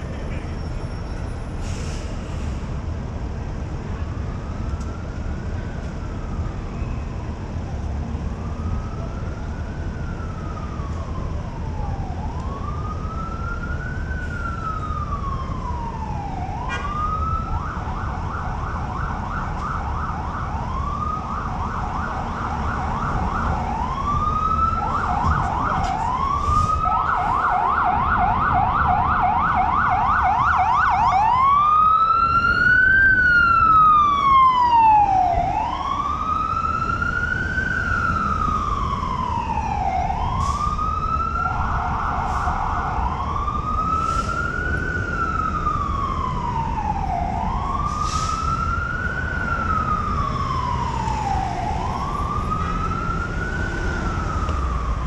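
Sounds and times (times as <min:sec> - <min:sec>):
low traffic rumble: 0:00.0 - 0:55.0.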